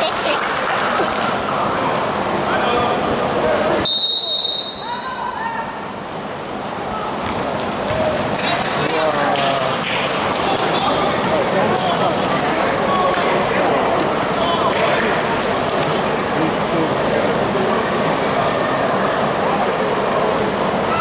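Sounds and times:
voices in echoing gym: 0.0 - 21.0
referee's whistle blast: 3.8 - 5.0
basketball bouncing: 7.2 - 8.1.

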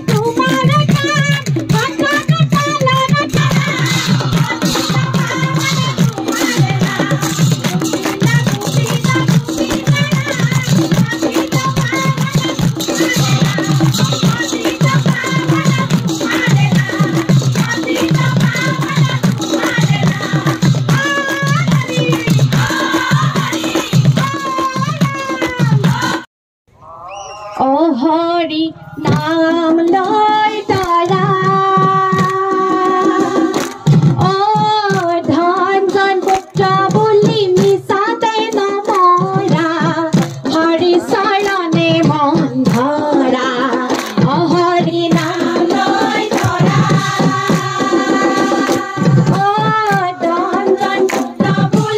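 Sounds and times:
rhythmic hand clapping: 0.0 - 26.2, 29.1 - 51.9
women singing devotional song: 0.0 - 26.3, 27.6 - 51.9.

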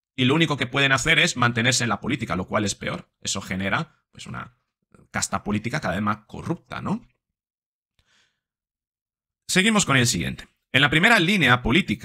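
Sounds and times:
man breathing: 8.0 - 8.5.

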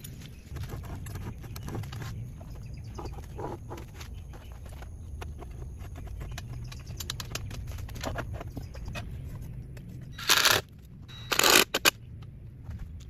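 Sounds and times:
small clicks and taps on rebar: 6.3 - 8.2.

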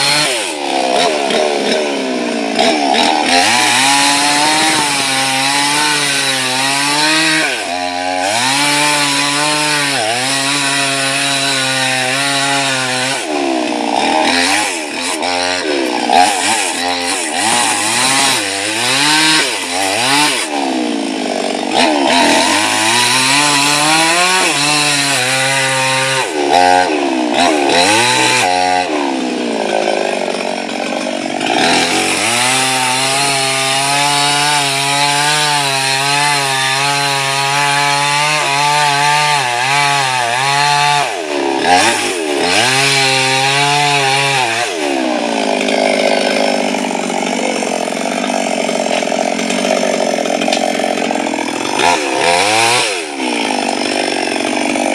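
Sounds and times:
chainsaw cutting wood: 0.0 - 54.9.

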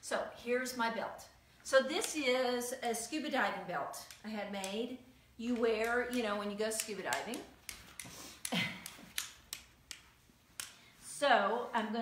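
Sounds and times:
weight belt clicking and tapping: 5.5 - 10.9.

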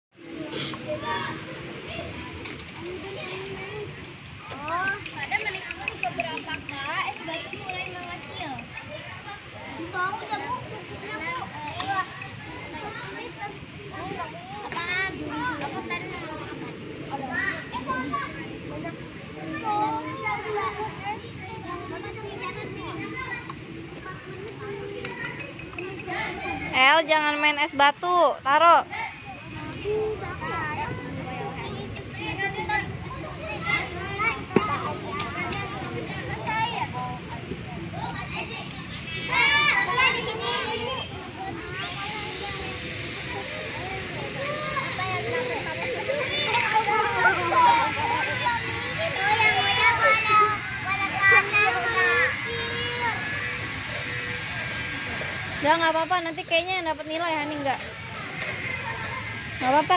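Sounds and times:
young children chattering: 0.2 - 59.9.

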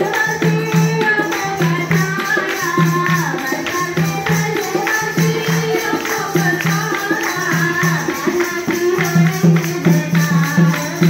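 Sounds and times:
dholak drum beat: 0.0 - 11.0
hand clapping: 0.0 - 11.0
women singing: 0.0 - 11.0.

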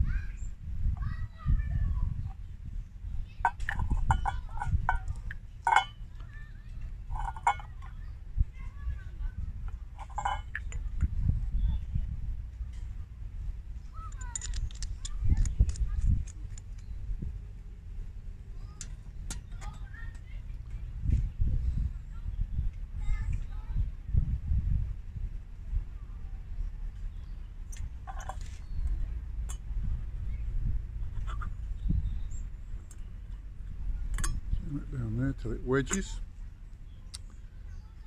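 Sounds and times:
steady low rumble: 0.0 - 38.0
small metal parts clinking: 3.4 - 6.2, 7.1 - 8.0, 10.0 - 10.8, 14.0 - 16.8, 28.0 - 28.7.

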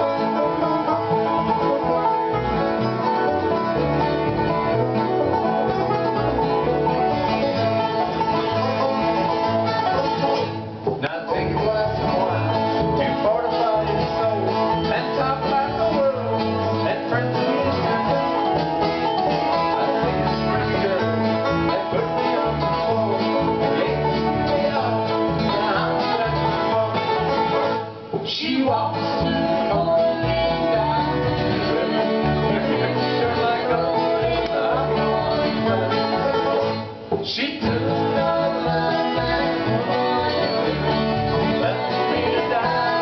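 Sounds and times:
banjo picking: 0.0 - 43.0
bluegrass band instrumental: 0.0 - 43.0.

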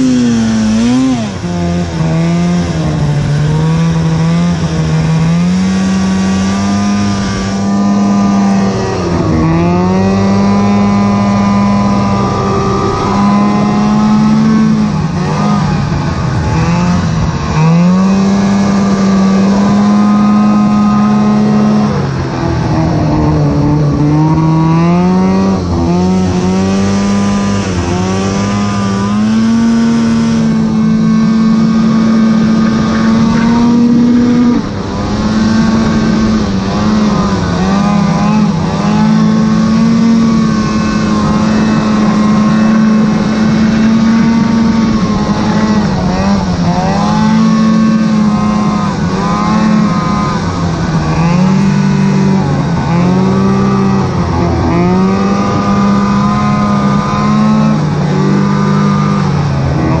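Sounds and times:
snowmobile engine revving: 0.0 - 60.0.

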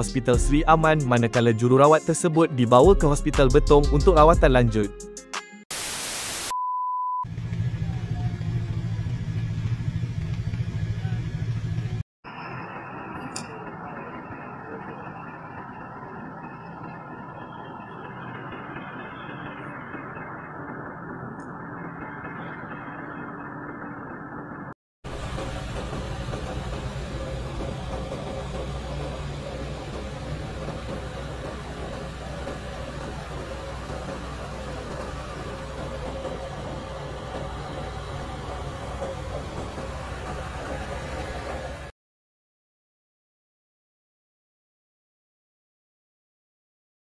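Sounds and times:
car driving road noise: 25.1 - 41.9.

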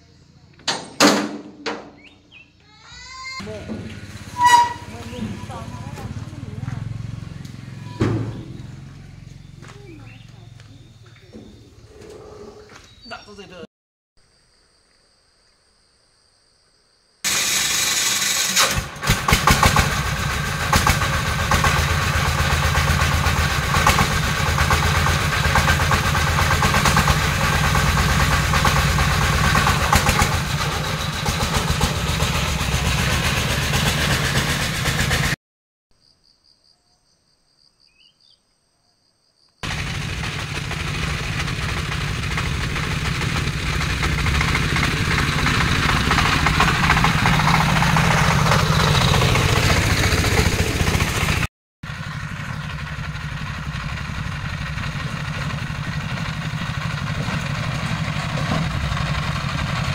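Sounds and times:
diesel engine clattering: 3.3 - 12.9, 17.3 - 35.4, 39.6 - 59.9.

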